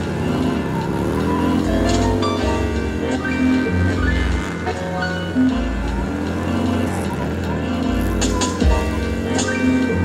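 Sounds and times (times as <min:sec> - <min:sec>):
motorcycle engine revving: 0:00.0 - 0:10.0
music: 0:00.0 - 0:10.0.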